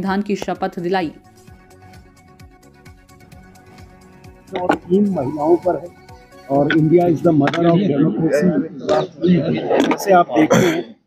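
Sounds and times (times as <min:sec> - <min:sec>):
man speaking: 0:04.5 - 0:11.0.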